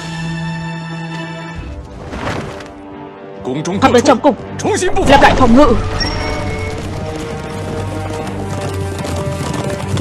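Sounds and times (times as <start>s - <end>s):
background music sustained tones: 0.0s - 10.0s
horses' hoofbeats: 6.6s - 10.0s.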